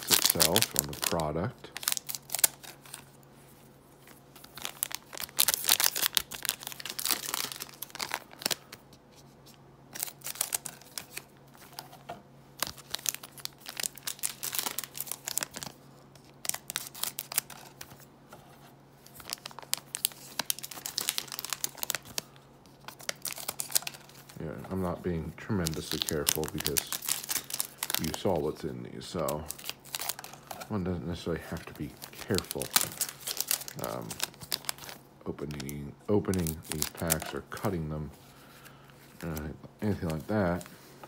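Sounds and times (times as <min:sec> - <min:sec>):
wrappers crinkling: 0:00.0 - 0:03.2, 0:04.0 - 0:08.9, 0:09.9 - 0:12.0, 0:12.6 - 0:18.0, 0:19.0 - 0:41.0.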